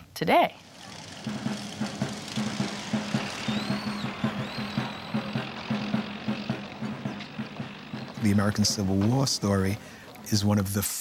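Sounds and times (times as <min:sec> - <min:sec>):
motorcycles riding past: 0:00.5 - 0:10.3
low repeating pulse: 0:00.7 - 0:09.9
music: 0:00.9 - 0:09.8.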